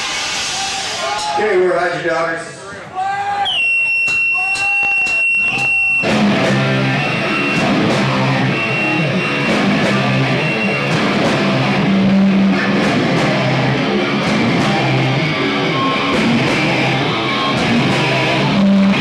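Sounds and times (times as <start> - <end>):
rock band playing: 4.1 - 19.0
steady high whine: 5.4 - 19.0.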